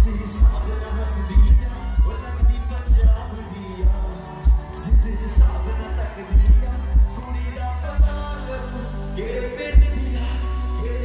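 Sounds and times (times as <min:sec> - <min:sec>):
heavy bass beat: 0:00.0 - 0:11.0
live pop song over pa: 0:00.0 - 0:11.0
person singing: 0:00.0 - 0:11.0.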